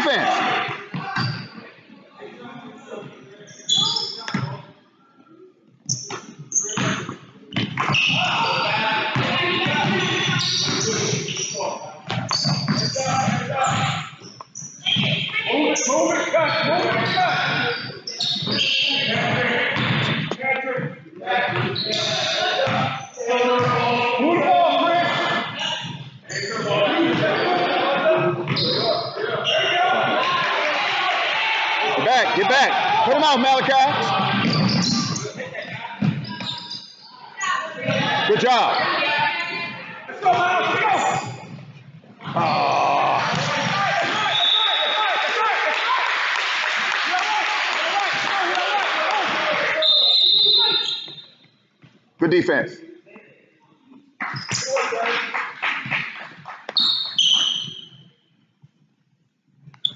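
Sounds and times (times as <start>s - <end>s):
voices echoing in gym: 0.0s - 58.4s
shoes squeaking on court: 0.1s - 1.6s, 3.5s - 4.6s, 5.8s - 20.3s, 21.5s - 23.7s, 28.4s - 29.8s, 34.1s - 38.0s, 49.9s - 51.6s, 54.3s - 54.7s, 56.8s - 58.1s
voices shouting with echo: 42.2s - 46.2s, 47.0s - 51.2s.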